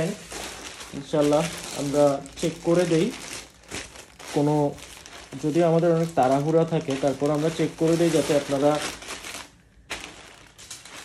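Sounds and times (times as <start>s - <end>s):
plastic mailer bag crinkling: 0.0s - 11.0s.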